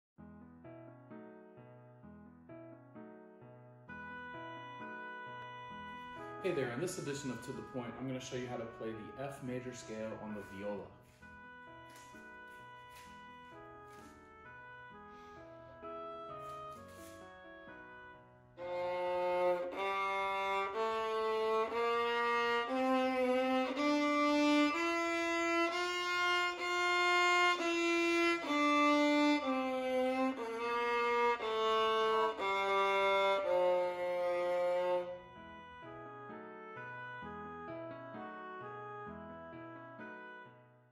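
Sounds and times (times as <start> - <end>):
viola bowing a scale: 18.6 - 35.9.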